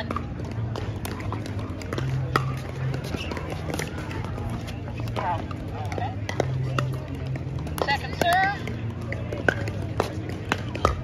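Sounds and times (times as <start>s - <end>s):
paddles striking plastic balls: 0.0s - 11.0s.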